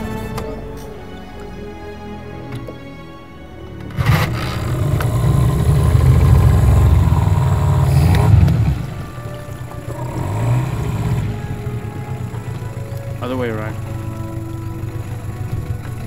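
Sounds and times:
outboard motor pull-started: 3.7 - 16.0
outboard motor running: 3.7 - 16.0.

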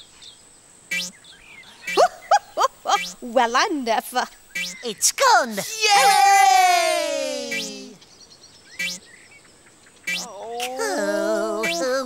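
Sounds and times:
cartoon bounce effect: 7.2 - 8.0, 8.8 - 9.0, 10.1 - 12.0.

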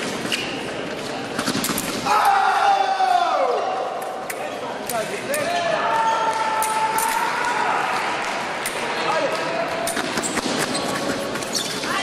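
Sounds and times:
shoes squeaking: 0.0 - 1.7, 10.0 - 12.0.

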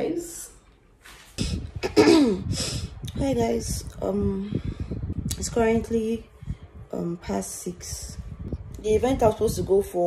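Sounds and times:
woman coughing: 1.8 - 2.6.

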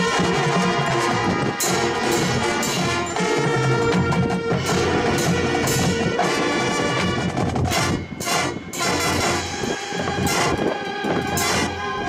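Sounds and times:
marching band playing: 0.0 - 12.0
sharp percussion strikes: 0.0 - 12.0.

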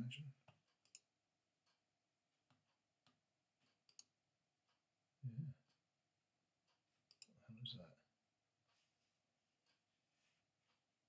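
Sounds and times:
computer mouse clicks: 0.8 - 1.1, 3.8 - 4.1, 7.1 - 7.3.

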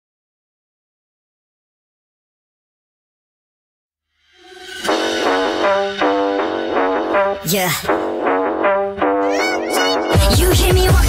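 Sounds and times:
pop song: 9.0 - 11.0.

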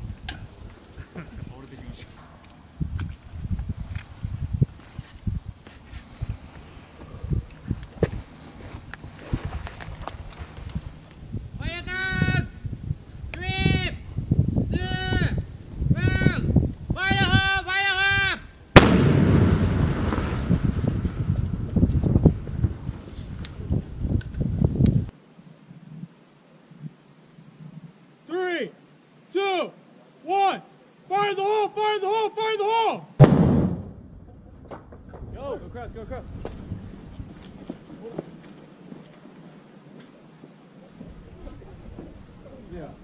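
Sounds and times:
person shouting calls: 11.6 - 12.6, 13.4 - 14.0, 14.7 - 15.4, 16.0 - 18.5, 28.3 - 33.1
blast echo and debris: 18.8 - 23.0, 33.2 - 35.4
explosive charge detonating: 18.8 - 23.0, 33.2 - 34.5.

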